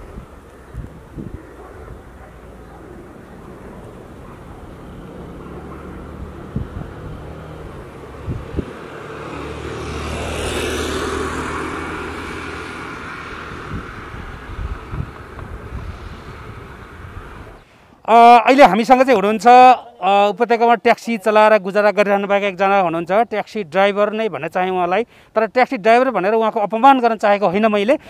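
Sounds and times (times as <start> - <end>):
wind buffeting microphone: 0.0 - 17.6
vehicle passing by: 1.2 - 17.7.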